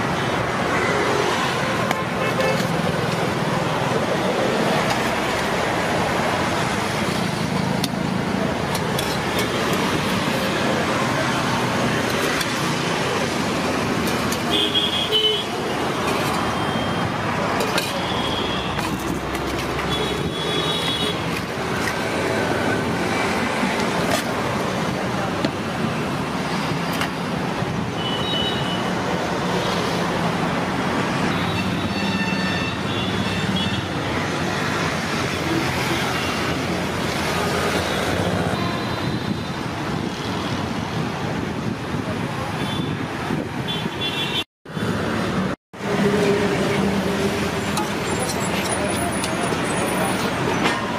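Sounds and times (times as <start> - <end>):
city traffic hum: 0.0 - 50.9.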